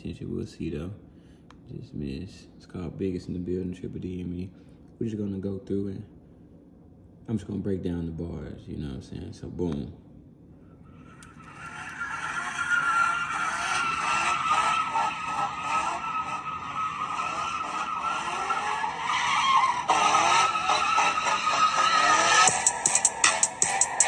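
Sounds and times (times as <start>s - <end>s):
tyres skidding and engines: 10.9s - 24.0s
music intro through laptop speakers: 22.4s - 24.0s.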